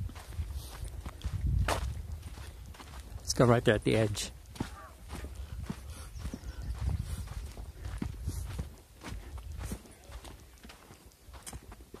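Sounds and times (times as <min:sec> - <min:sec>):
footsteps on sandy trail: 0:00.0 - 0:12.0.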